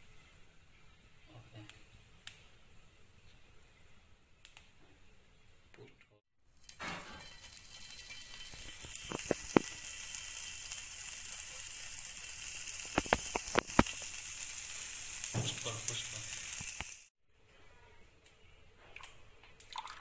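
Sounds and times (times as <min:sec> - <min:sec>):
oil sizzling in a frying pan: 0:06.6 - 0:17.1
oil popping and spitting: 0:08.6 - 0:09.8, 0:12.8 - 0:14.1.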